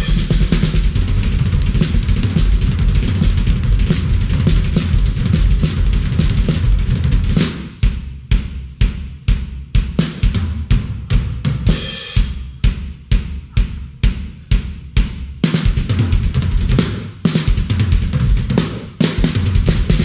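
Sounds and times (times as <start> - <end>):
drum kit solo: 0.0 - 20.0.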